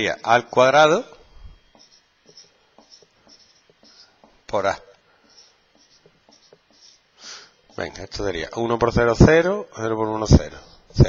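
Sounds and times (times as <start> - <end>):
marker squeaking on whiteboard: 1.6 - 8.0
marker tapping on whiteboard: 1.7 - 4.4, 5.2 - 6.9.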